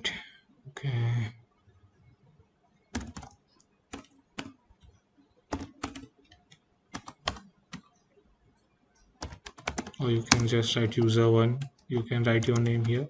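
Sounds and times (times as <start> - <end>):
computer keyboard typing: 2.9 - 4.6, 5.5 - 7.9, 9.0 - 13.0.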